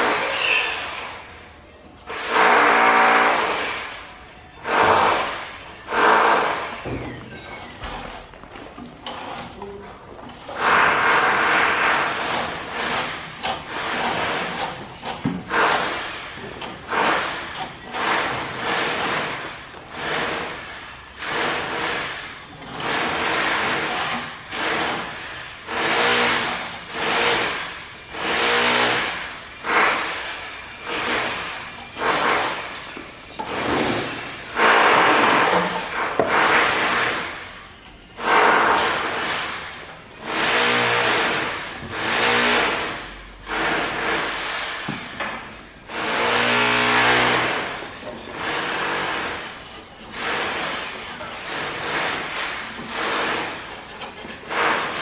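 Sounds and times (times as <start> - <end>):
plastering tool scraping cement: 7.8 - 37.4, 46.0 - 55.0.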